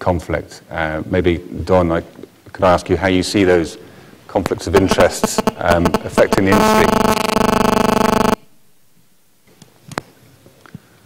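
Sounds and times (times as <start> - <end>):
pulsing electronic buzz: 4.8 - 8.5.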